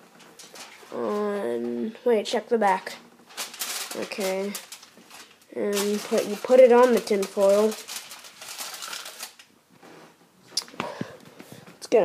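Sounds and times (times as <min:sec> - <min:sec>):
tin foil rustling: 0:00.0 - 0:09.6.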